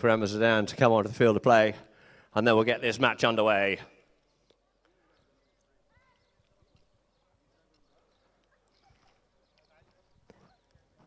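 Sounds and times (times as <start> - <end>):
hooves on turf: 5.8 - 11.0.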